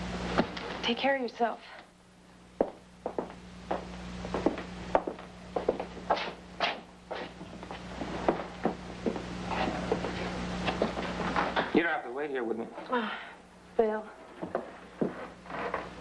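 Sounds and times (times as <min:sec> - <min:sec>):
steady low hum: 0:00.0 - 0:16.0
footsteps on hard floor: 0:02.6 - 0:11.6, 0:14.3 - 0:15.9.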